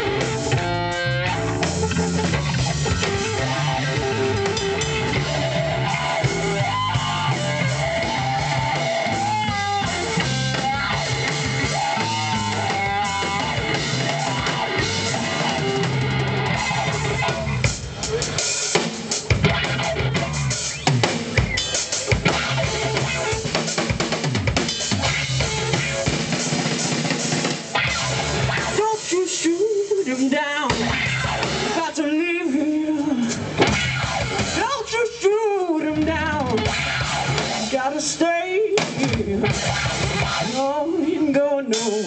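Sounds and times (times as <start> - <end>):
rock band playing: 0.0 - 42.0.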